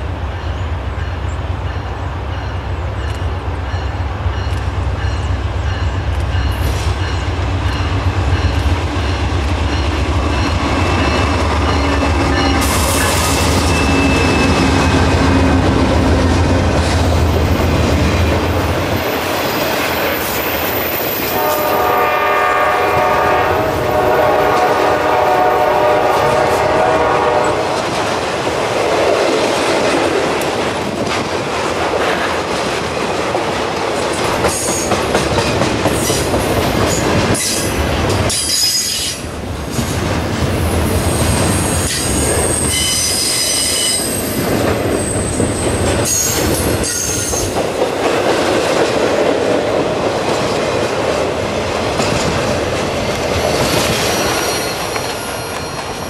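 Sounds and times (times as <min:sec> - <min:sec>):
freight train wheels clacking: 0:00.0 - 0:56.0
wheel squeals: 0:13.4 - 0:14.7
locomotive air horn: 0:21.2 - 0:27.8.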